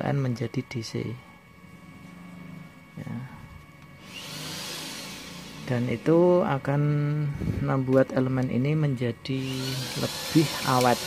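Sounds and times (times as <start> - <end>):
man speaking: 0.0 - 1.3, 5.6 - 11.0.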